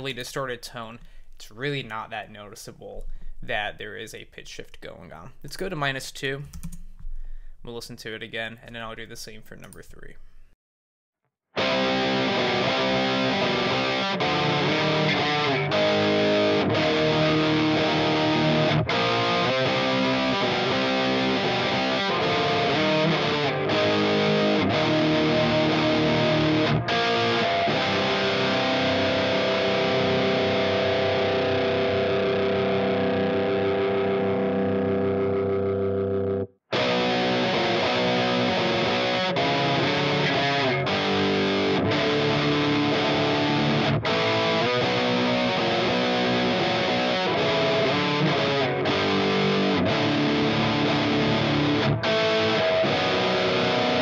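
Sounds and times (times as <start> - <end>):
distorted electric guitar riff: 11.6 - 54.0.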